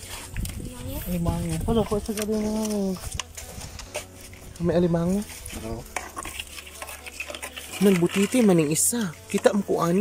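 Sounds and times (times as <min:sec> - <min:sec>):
metal rod stirring: 0:00.0 - 0:10.0
shells clattering in a bucket: 0:05.3 - 0:10.0.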